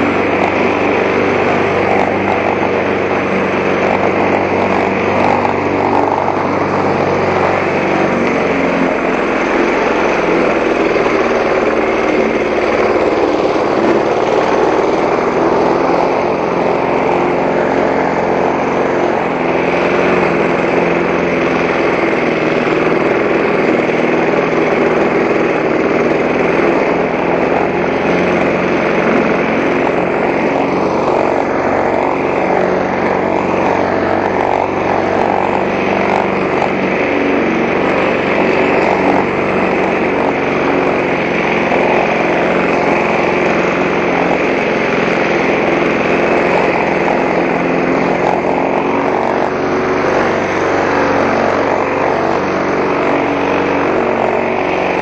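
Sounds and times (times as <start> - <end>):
lawn mower engine running: 0.0 - 55.0.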